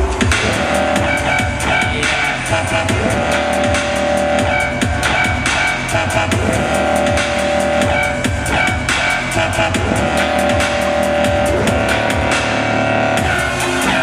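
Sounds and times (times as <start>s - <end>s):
loud dubstep music: 0.0s - 14.0s.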